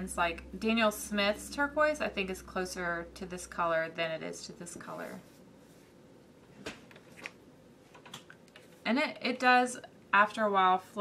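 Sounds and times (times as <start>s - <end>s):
woman speaking: 0.0s - 5.4s, 8.8s - 11.0s.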